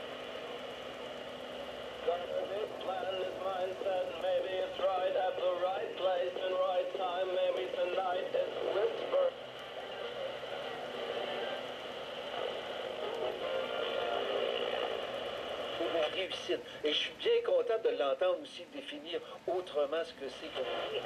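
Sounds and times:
hazy radio noise: 0.0 - 21.0
tinny radio voice and music: 2.0 - 21.0.

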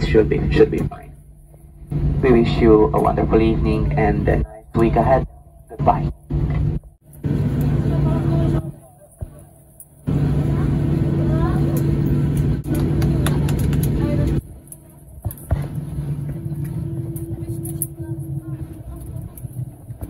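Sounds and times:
faint passenger voices: 0.0 - 6.6, 7.2 - 20.0
airliner engines humming: 0.0 - 20.0.

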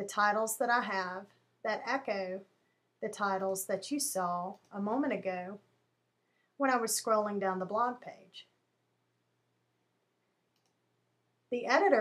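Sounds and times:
faint mouse click: 10.5 - 10.8.

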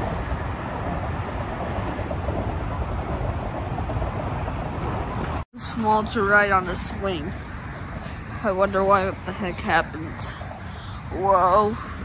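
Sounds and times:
highway traffic rushing: 0.0 - 12.0.

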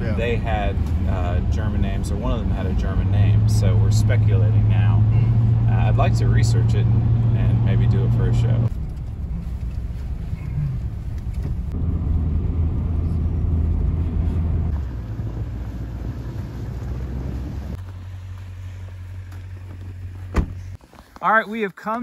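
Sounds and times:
engine and road rumble inside car: 0.0 - 20.9.

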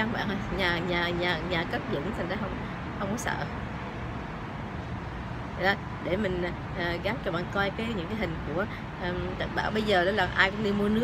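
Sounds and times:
distant road traffic hum: 0.0 - 11.0.

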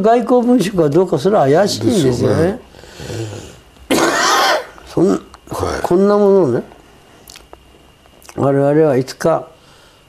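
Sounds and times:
man clearing throat: 3.9 - 5.3.

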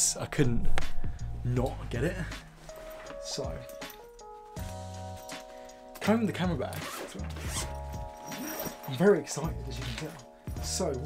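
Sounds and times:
bag zipper rasping: 6.7 - 9.0.

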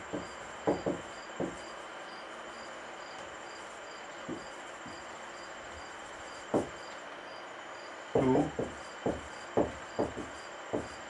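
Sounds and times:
steady hiss: 0.0 - 11.0
high insect-like chirp: 0.1 - 11.0.

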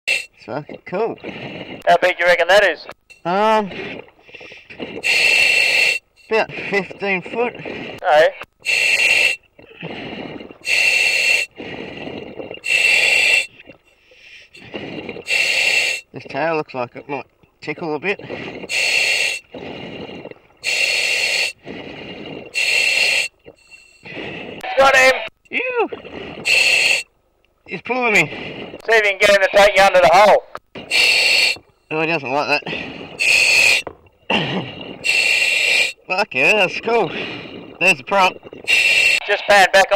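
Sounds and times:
diver breathing through regulator: 1.2 - 1.9, 3.7 - 16.2, 18.2 - 24.6, 25.9 - 27.1, 28.2 - 28.9, 30.7 - 31.9, 32.6 - 36.1, 36.8 - 39.4.

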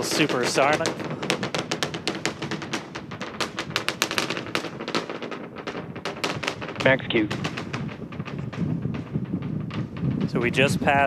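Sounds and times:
distant rocket engine rumble: 0.0 - 11.0
sharp pops: 0.0 - 11.0.

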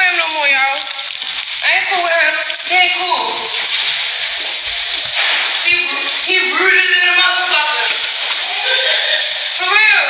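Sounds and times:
steady hiss: 0.0 - 10.0
high voice speaking: 1.7 - 3.7.

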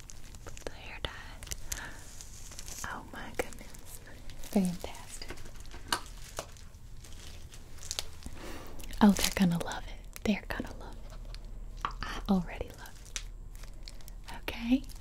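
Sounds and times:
crinkles and clicks near microphone: 0.0 - 15.0.

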